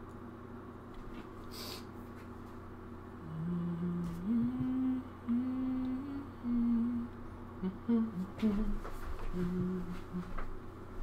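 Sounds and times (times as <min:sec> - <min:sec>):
person humming a tune: 0:03.2 - 0:10.5.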